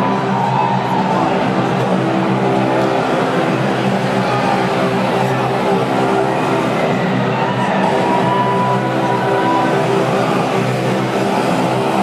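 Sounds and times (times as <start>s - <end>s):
distorted live rock concert: 0.0s - 12.0s.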